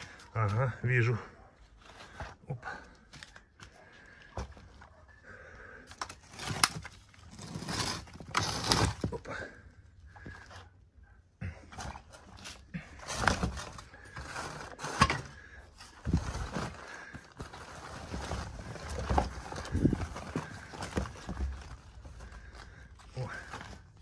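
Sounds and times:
fabric bag rustling: 15.8s - 24.0s.

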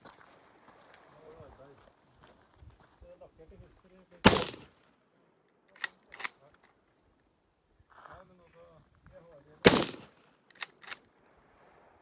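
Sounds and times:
loud rifle shot: 4.2s - 4.8s, 9.6s - 11.0s
sharp clicks: 5.7s - 6.8s, 10.5s - 11.1s.

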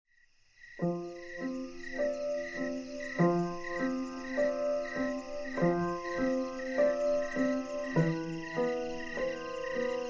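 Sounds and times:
cricket chirping: 0.1s - 10.0s
slow solo piano: 0.8s - 10.0s.

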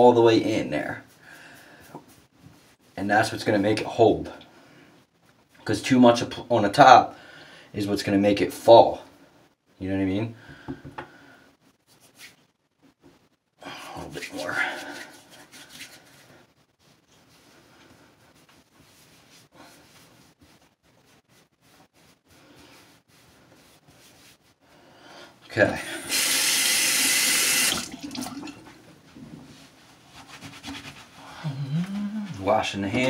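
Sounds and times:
hands rustling through hair: 11.8s - 12.5s, 14.0s - 24.6s, 29.4s - 33.0s
sink tap running: 26.1s - 28.5s.

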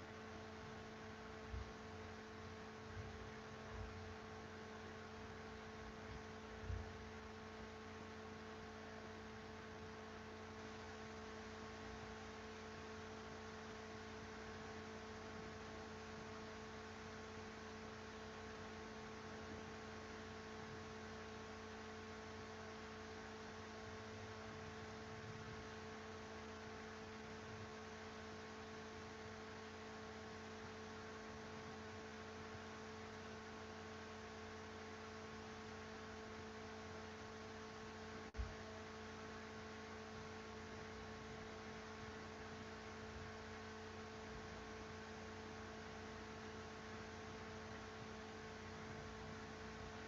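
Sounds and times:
electrical hum: 0.0s - 50.0s.

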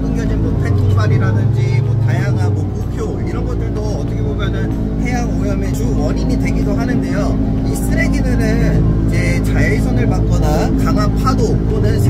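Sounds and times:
boat engine droning: 0.0s - 12.0s
man talking: 0.0s - 12.0s.

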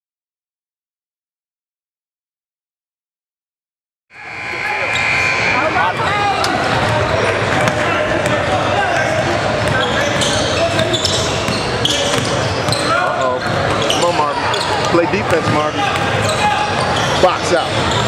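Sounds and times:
voices of players and spectators: 4.2s - 18.0s.

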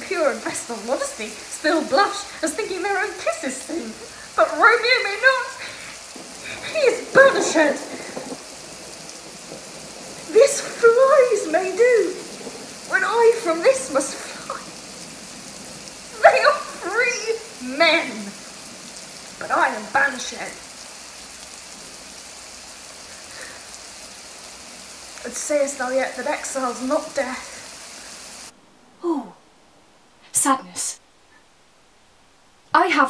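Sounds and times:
steady background hiss: 0.0s - 33.0s.

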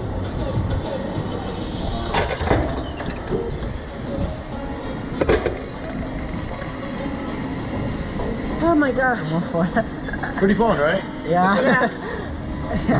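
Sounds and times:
faint background music: 0.0s - 12.9s.

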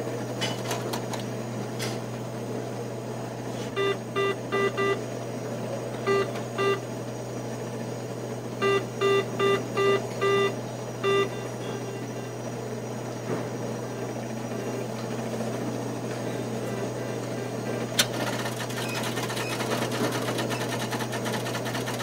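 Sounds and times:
machine hum: 0.0s - 22.0s
keypad beeps: 3.7s - 5.0s, 6.0s - 6.8s, 8.6s - 12.3s.

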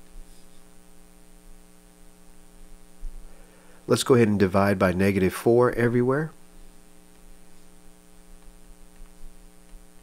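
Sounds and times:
electrical mains hum: 0.0s - 10.0s
man speaking: 3.9s - 6.4s.

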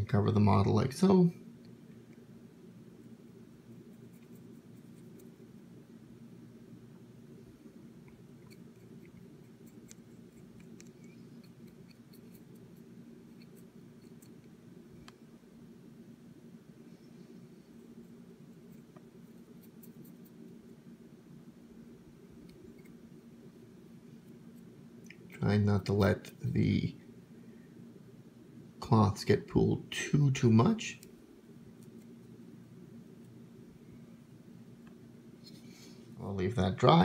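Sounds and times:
low room hum: 0.0s - 37.0s.

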